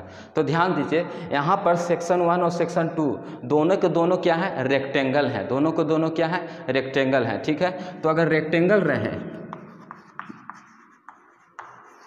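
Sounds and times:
chalk scratching on blackboard: 9.5 - 12.0.

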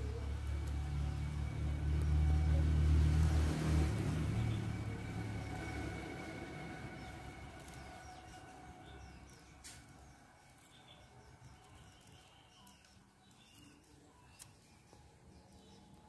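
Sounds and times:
passing vehicle engine rumble: 0.0 - 13.1.

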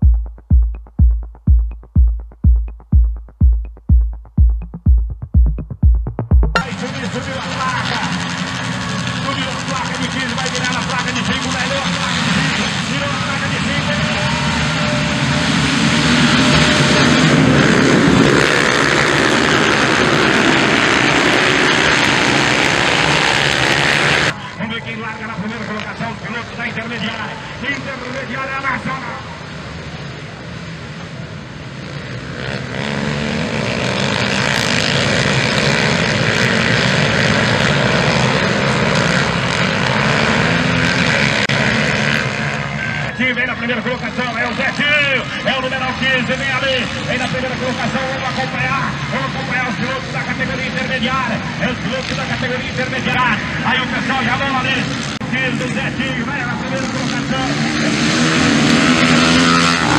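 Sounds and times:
dirt bike engines revving: 6.6 - 59.9.

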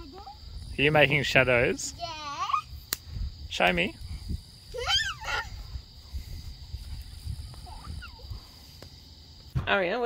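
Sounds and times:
night insects trilling: 0.0 - 10.0
child squealing: 4.7 - 5.6, 7.7 - 8.3.

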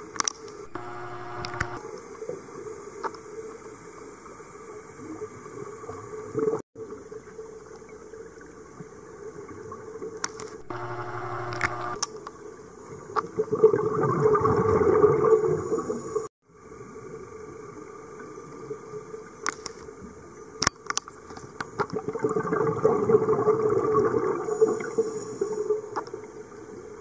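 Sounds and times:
brief buzzing tone: 0.6 - 1.8, 10.6 - 12.0
gurgling exhaled bubbles: 22.0 - 24.9.

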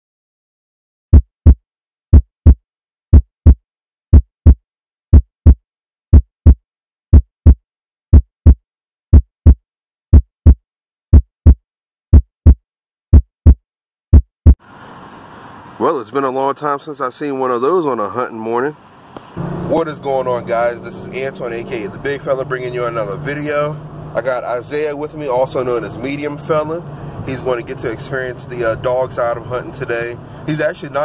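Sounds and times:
heartbeat thumps: 1.1 - 14.6
man speaking: 15.8 - 18.8, 19.6 - 31.0.

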